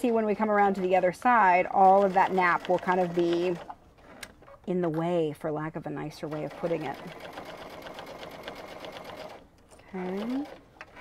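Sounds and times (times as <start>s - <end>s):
sewing machine stitching: 1.8s - 3.7s, 6.3s - 11.0s.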